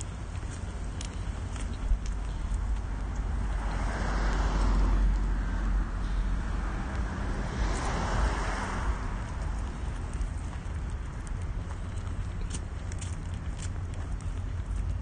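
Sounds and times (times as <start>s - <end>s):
footsteps on concrete: 0.0s - 5.4s, 6.9s - 15.0s
cars passing by: 0.0s - 15.0s
steady low rumble: 0.0s - 15.0s.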